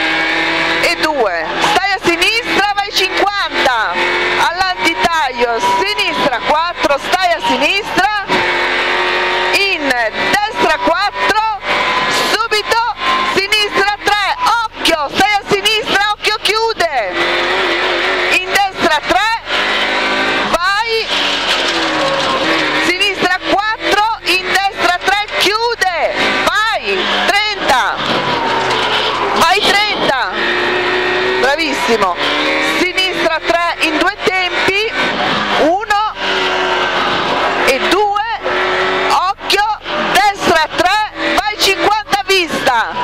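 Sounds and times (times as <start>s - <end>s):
rally car engine revving: 0.0s - 43.0s.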